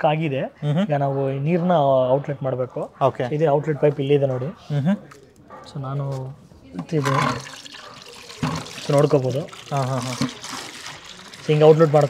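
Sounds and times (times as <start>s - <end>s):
man speaking: 0.0s - 7.4s, 8.9s - 10.3s
water draining into bucket: 6.8s - 12.0s.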